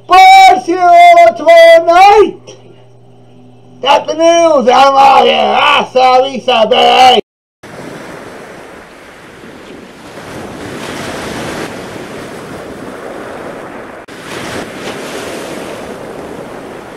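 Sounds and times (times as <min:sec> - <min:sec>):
rushing surf and spray: 0:07.6 - 0:16.9
wind buffeting microphone: 0:07.7 - 0:16.9.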